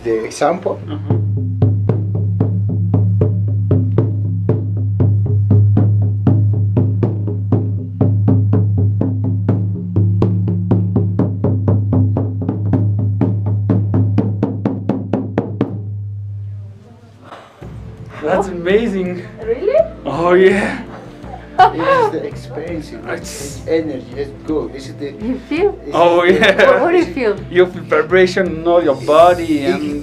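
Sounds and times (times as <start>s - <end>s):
frame drum beating: 0.6s - 16.4s, 17.3s - 30.0s.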